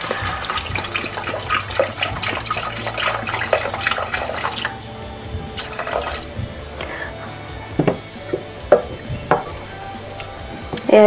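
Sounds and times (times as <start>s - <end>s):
broth pouring into a pot: 0.0s - 6.5s
background music: 0.0s - 11.0s.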